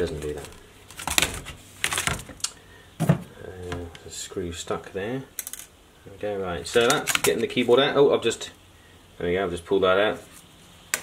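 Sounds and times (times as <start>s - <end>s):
plastic clicks and clatter: 6.8s - 7.5s.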